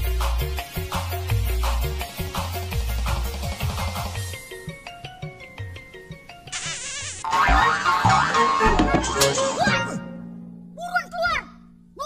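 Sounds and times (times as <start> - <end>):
comedic film music: 0.0 - 11.9
warbling sound effect: 7.2 - 10.0.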